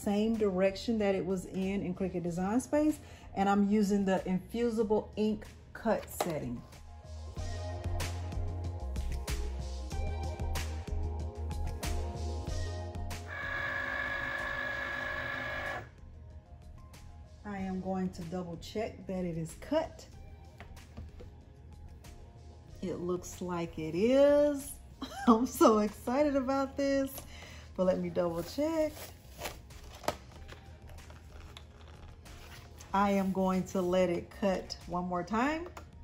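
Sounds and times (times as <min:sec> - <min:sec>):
background music: 0:00.0 - 0:36.0
cutting machine motor whine: 0:13.2 - 0:15.9
vinyl sheet peeling and rustling: 0:28.2 - 0:34.0.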